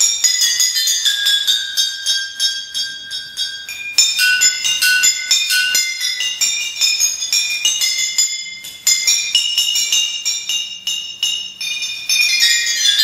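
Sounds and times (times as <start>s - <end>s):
glass bottles struck: 0.0s - 13.0s.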